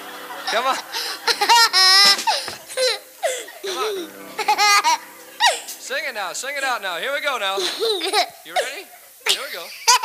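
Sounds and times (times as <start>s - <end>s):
boy laughing into microphone: 0.4s - 5.8s, 7.6s - 10.0s.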